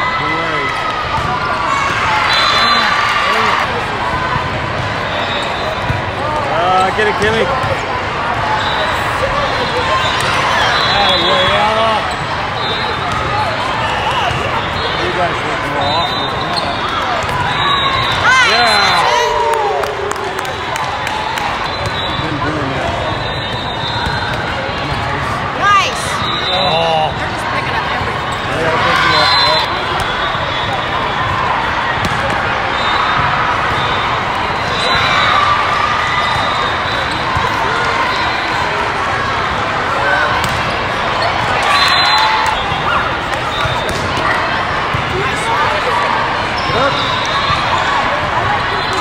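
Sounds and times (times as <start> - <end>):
din of many voices: 0.0 - 49.0
volleyballs being hit and bouncing: 20.4 - 25.4, 31.6 - 33.8, 40.2 - 41.5, 42.4 - 45.5.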